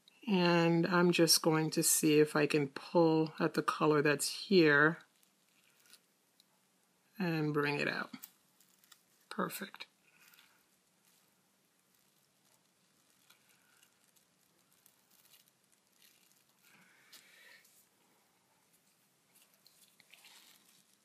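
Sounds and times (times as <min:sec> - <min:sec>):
faint soft rustles: 0:04.7 - 0:06.6, 0:07.8 - 0:21.0.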